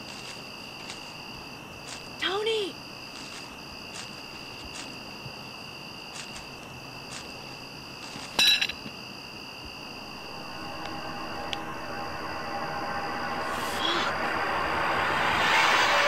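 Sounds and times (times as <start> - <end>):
crickets trilling: 0.0 - 15.9.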